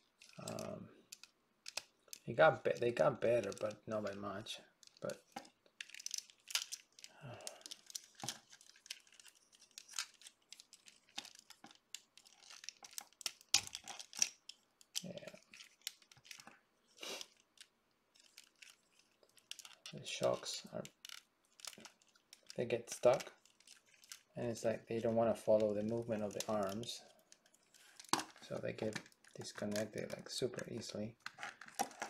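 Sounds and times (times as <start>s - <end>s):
plastic figure parts clicking: 0.2s - 2.2s.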